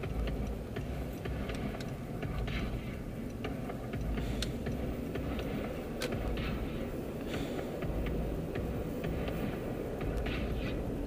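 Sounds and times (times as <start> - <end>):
engine and road rumble: 0.0 - 11.0.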